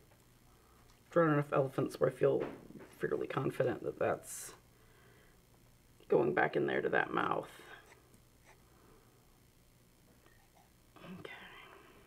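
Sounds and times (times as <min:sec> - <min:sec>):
person whispering: 0:11.0 - 0:12.0.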